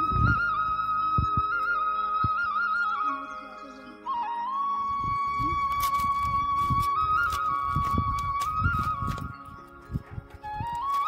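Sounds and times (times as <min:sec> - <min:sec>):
soft low thumps: 0:00.0 - 0:02.6
flute with trills: 0:00.0 - 0:11.0.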